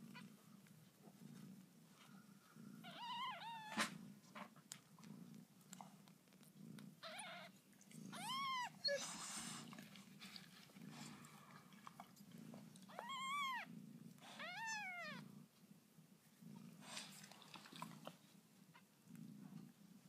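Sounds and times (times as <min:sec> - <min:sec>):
cat purring: 0:00.0 - 0:15.6, 0:16.2 - 0:20.0
kittens rustling: 0:00.1 - 0:15.2.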